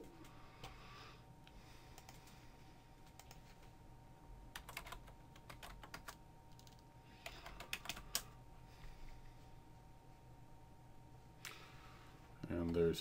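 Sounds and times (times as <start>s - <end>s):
typing on computer keyboard: 3.0s - 3.4s, 4.5s - 8.3s.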